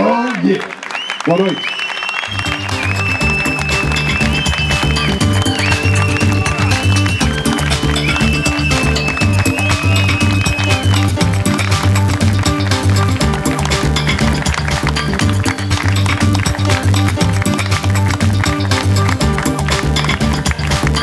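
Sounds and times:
instrumental theme music: 2.3 - 21.0.

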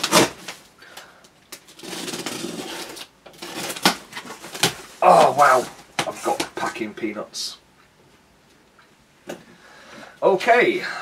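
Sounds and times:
packing tape tearing: 0.0 - 0.7, 1.5 - 6.5
cardboard flaps rustling: 1.7 - 6.8.

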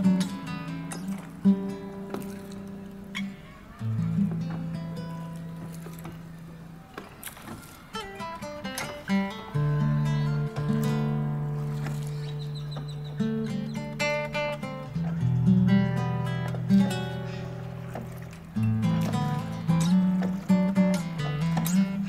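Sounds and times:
plucked acoustic guitar: 0.0 - 7.2, 7.9 - 22.0.

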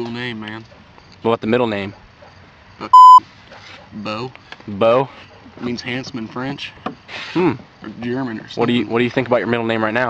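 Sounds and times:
censor bleep tone: 2.9 - 3.2.

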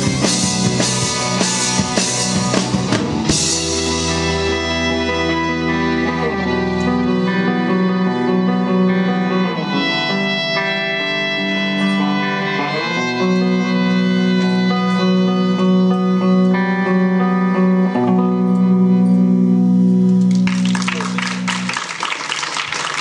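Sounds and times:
electric violin: 0.0 - 21.5
keyboards sustained chords: 0.0 - 23.0.

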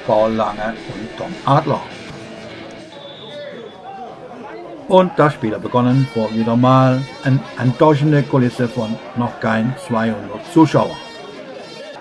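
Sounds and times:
faint voices: 0.0 - 12.0
referee's whistle: 2.8 - 4.2, 10.6 - 12.0.

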